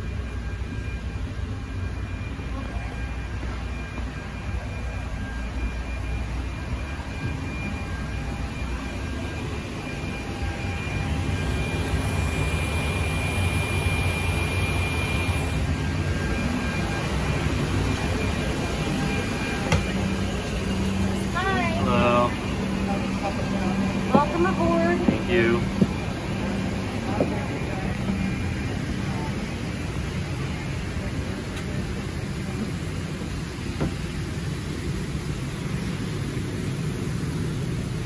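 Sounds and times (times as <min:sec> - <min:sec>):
thin high whine: 0:00.0 - 0:33.7
airport machinery drone: 0:00.0 - 0:38.0.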